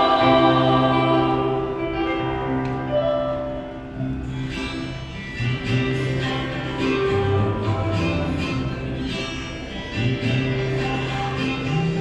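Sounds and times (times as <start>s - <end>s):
electronic keyboard strumming: 0.0s - 12.0s
sustained bass notes: 0.0s - 12.0s.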